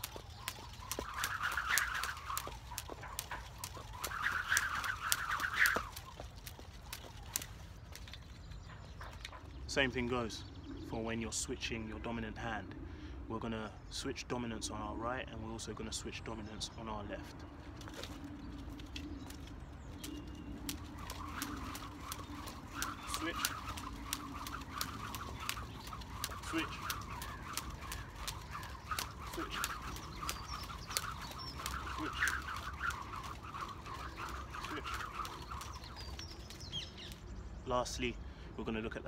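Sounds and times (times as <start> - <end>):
jump rope slapping pavement: 0.0 - 8.2, 19.2 - 37.2
rope whooshing through air: 0.0 - 9.3, 17.7 - 37.2.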